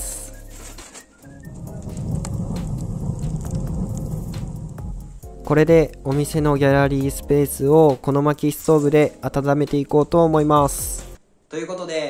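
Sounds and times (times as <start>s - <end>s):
fire roaring in wood stove: 0.0s - 6.0s
firewood crackling: 0.0s - 11.2s.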